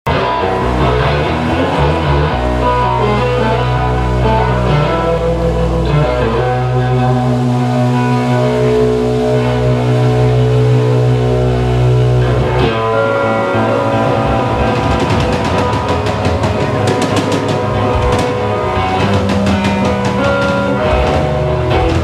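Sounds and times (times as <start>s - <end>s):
amplified acoustic guitar chords: 0.1s - 22.0s
drum and cymbal hits: 12.8s - 22.0s.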